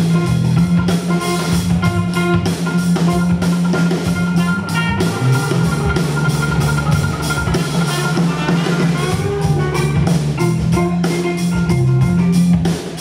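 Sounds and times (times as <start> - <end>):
drum kit: 0.0 - 13.0
electric guitar: 0.0 - 13.0.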